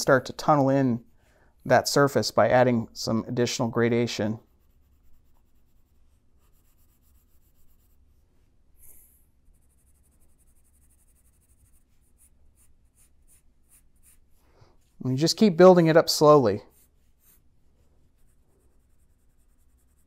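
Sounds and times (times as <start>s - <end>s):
pencil scratching on paper: 4.4s - 8.2s, 8.8s - 15.0s, 16.6s - 20.0s.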